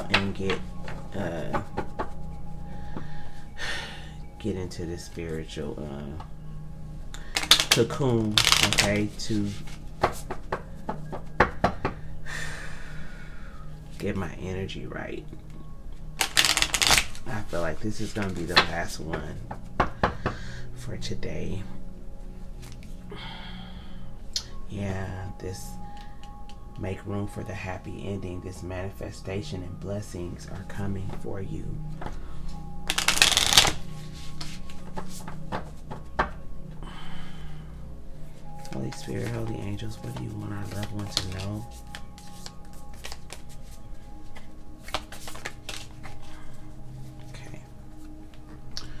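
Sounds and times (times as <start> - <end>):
cards rustling: 7.2 - 10.3, 16.2 - 18.7, 32.8 - 36.0, 38.6 - 47.4.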